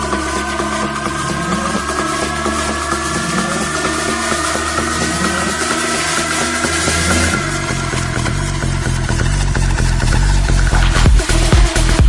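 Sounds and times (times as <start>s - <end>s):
minimal techno music: 0.0s - 12.0s.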